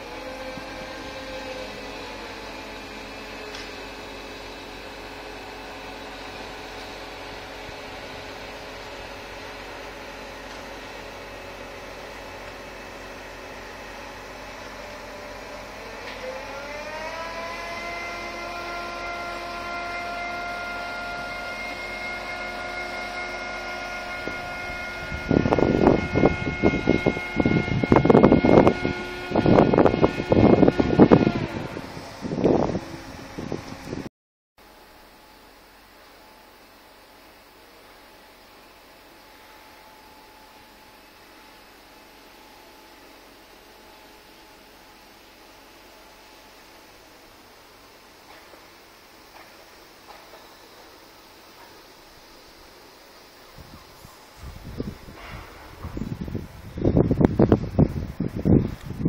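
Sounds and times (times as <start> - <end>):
crane engine and hydraulics whining: 0.0 - 59.0
loud irregular noise bursts: 0.0 - 59.0.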